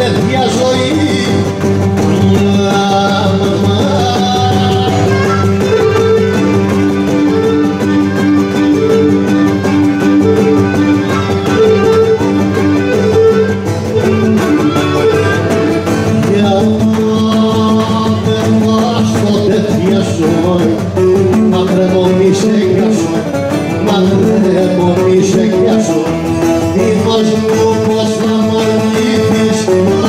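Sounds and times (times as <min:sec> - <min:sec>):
folk dance music: 0:00.0 - 0:30.0
plucked string melody: 0:00.0 - 0:30.0.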